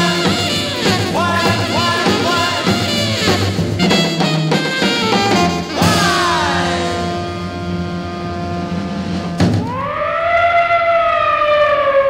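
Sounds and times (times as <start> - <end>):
horn band chord: 0.0 - 9.5
siren wail: 9.6 - 12.0.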